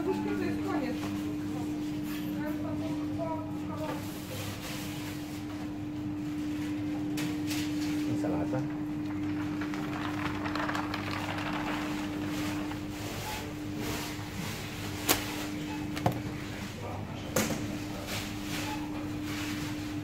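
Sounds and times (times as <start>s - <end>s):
rustling and handling noise: 9.0s - 16.8s.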